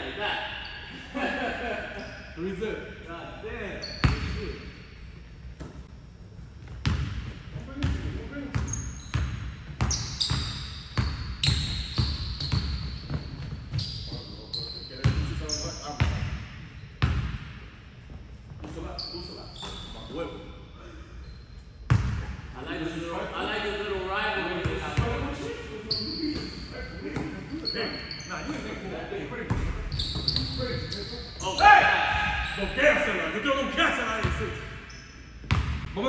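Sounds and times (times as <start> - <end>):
sneakers squeaking on hardwood: 7.8 - 15.8, 18.6 - 20.2, 25.8 - 28.6, 29.5 - 32.8.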